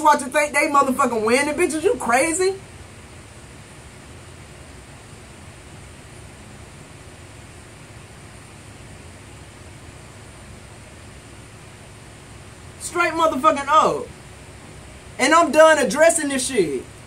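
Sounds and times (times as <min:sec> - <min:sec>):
background hiss: 0:00.0 - 0:17.0
faint low hum: 0:00.0 - 0:17.0.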